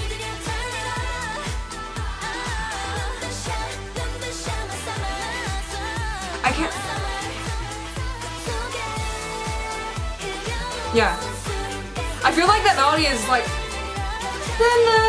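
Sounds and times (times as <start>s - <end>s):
steady kick-drum beat: 0.0s - 15.0s
woman singing pop song: 0.0s - 15.0s.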